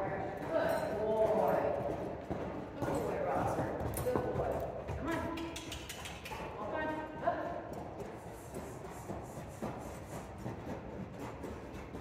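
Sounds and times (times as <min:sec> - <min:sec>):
horse hoofbeats on dirt: 0:00.0 - 0:12.0.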